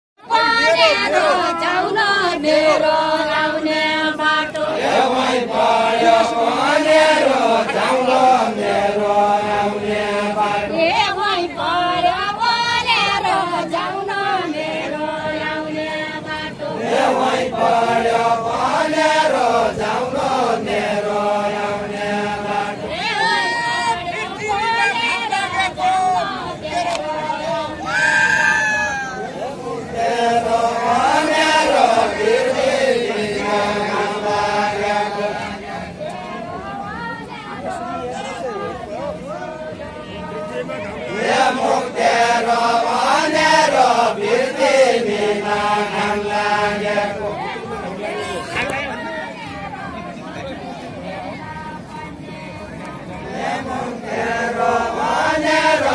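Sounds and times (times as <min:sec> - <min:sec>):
men singing unaccompanied folk song: 0:00.2 - 0:55.9
group of voices chanting: 0:00.3 - 0:10.9, 0:12.5 - 0:36.7, 0:39.5 - 0:49.1.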